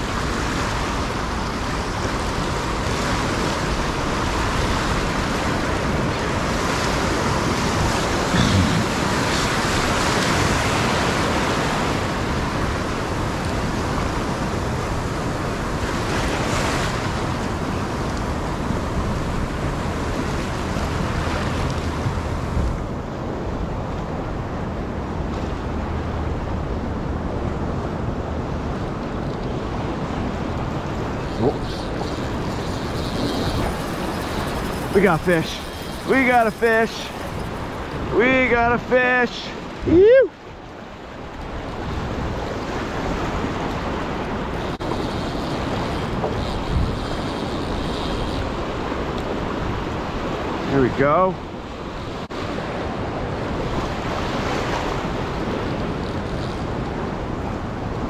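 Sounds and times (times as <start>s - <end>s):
ocean surf breaking: 0.0s - 58.0s.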